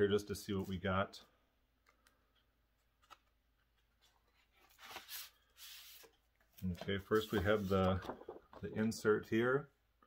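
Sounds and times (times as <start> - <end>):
paper rustling and sliding: 4.0 - 8.4.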